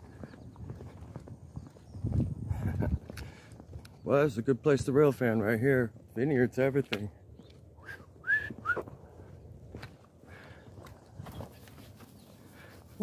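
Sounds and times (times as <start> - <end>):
short whistle-like chirps: 7.8 - 8.9.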